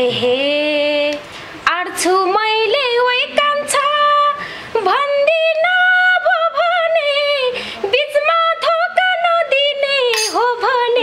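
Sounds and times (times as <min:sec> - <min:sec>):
woman singing folk song: 0:00.0 - 0:11.0
singer breathing: 0:04.4 - 0:04.8, 0:07.5 - 0:07.9.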